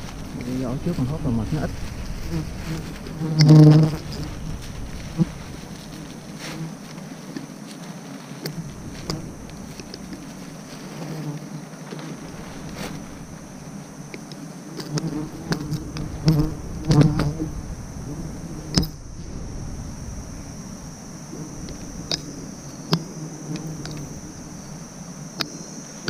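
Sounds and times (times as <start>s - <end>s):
bees buzzing: 0.0s - 26.0s
leaves and branches rustling: 0.0s - 26.0s.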